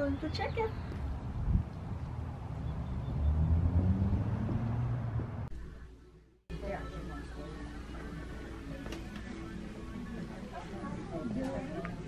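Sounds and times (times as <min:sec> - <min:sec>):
car engine rumble passing: 0:01.0 - 0:05.6.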